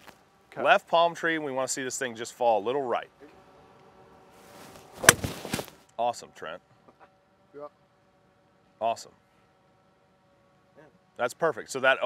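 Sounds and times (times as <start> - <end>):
golf club swish: 4.4 - 5.7
golf club striking ball: 5.0 - 5.6.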